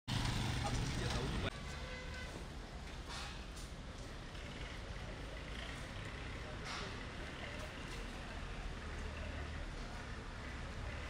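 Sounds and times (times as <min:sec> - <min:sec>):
vehicle engine running: 0:00.1 - 0:01.5
outdoor background noise: 0:00.1 - 0:11.0
voices: 0:00.4 - 0:02.3, 0:04.2 - 0:11.0.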